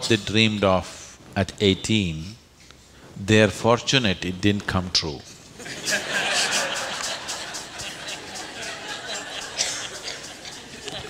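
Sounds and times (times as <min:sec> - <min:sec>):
crowd laughing: 0:05.6 - 0:11.0.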